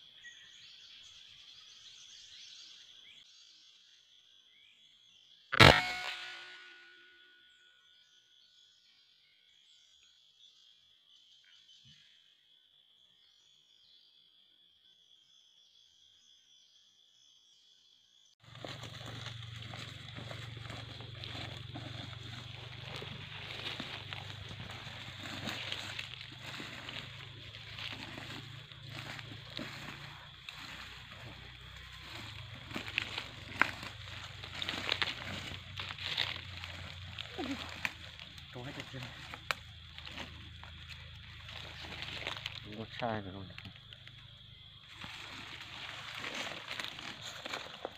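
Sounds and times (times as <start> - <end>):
footsteps through dry leaves: 18.4 - 42.7, 44.2 - 47.9
twigs snapping: 18.5 - 42.7, 44.9 - 47.9.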